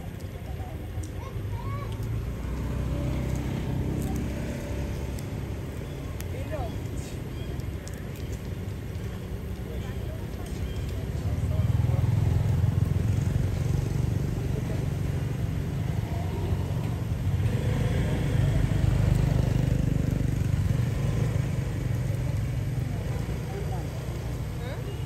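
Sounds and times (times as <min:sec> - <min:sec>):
faint voices: 0:00.0 - 0:25.0
low engine rumble: 0:00.0 - 0:25.0.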